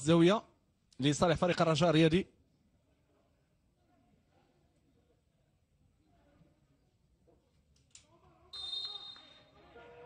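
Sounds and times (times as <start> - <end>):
referee's whistle blast: 8.6 - 9.6.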